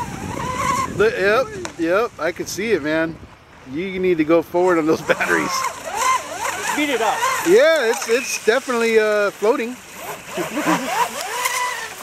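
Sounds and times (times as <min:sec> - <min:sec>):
model speedboat running: 0:00.0 - 0:02.8, 0:04.6 - 0:12.0
man laughing: 0:04.8 - 0:05.6, 0:10.3 - 0:11.2.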